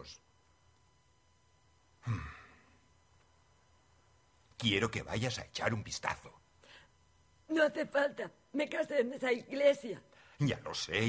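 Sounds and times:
man sighing: 2.0 - 2.7.

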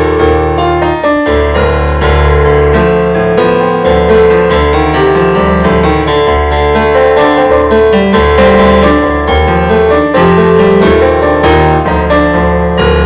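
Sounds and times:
electronic keyboard piano: 0.0 - 13.0.

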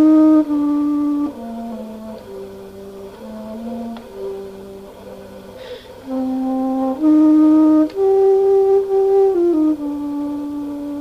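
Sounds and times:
alto flute low notes: 0.0 - 11.0
breath drawn: 5.5 - 6.0.

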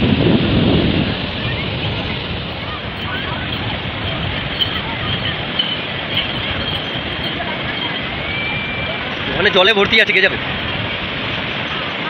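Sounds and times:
sea waves breaking on beach: 0.0 - 12.0
wind on microphone: 0.0 - 12.0
faint distant voices: 1.0 - 12.0.

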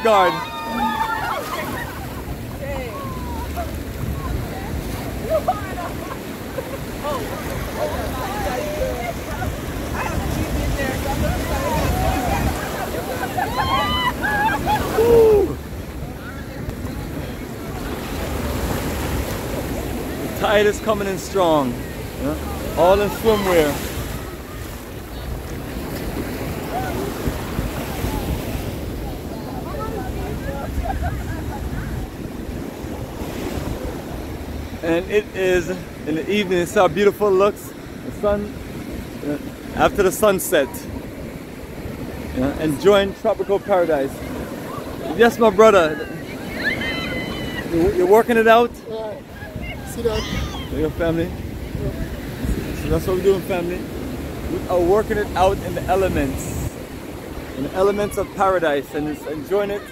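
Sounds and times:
voices talking over one another: 0.0 - 18.5, 19.5 - 59.9
surf washing in: 0.0 - 59.9
wind rumble on microphone: 1.6 - 20.4, 24.0 - 34.8, 49.2 - 53.0.

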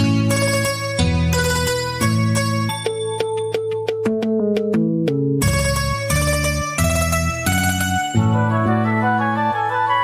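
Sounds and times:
backing track with bass: 0.0 - 10.0.

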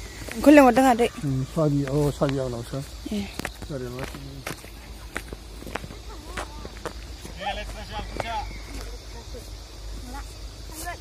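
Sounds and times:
footsteps on grassy dirt: 0.0 - 11.0.

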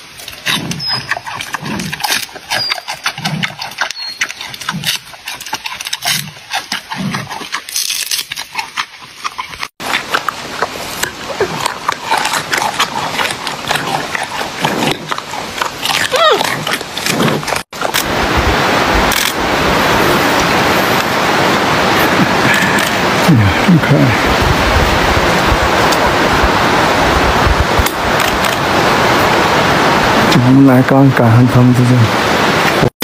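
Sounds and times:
wet chewing: 0.0 - 18.1
panda crunching bamboo: 0.2 - 18.1.

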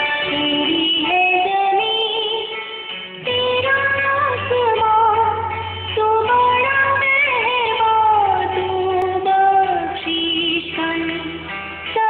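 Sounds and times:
musical accompaniment: 0.0 - 12.0.

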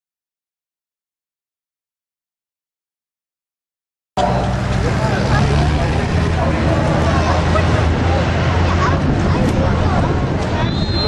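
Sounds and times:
racing car engines droning: 4.2 - 11.0
spectators talking: 4.2 - 11.0.

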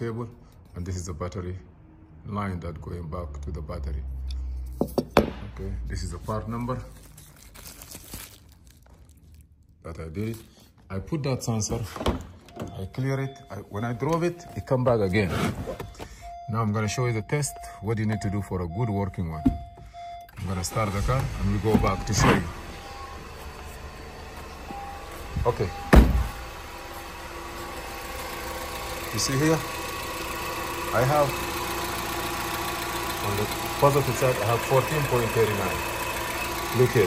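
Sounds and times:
bubble wrap crinkling: 6.8 - 10.3
car engine idling: 19.6 - 37.0
thump: 25.9 - 26.3.

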